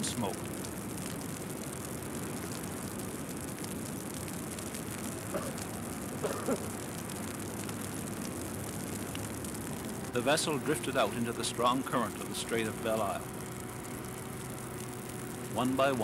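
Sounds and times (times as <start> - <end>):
boat engine drone: 0.0 - 16.0
water noise: 0.0 - 16.0.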